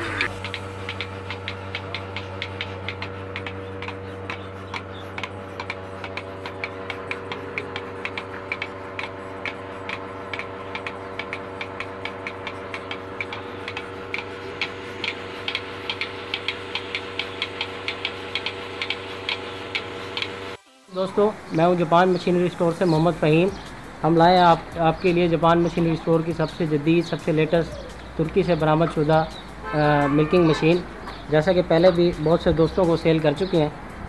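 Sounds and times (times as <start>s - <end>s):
pulsators clicking: 0.0s - 34.0s
vacuum pump humming: 0.0s - 34.0s.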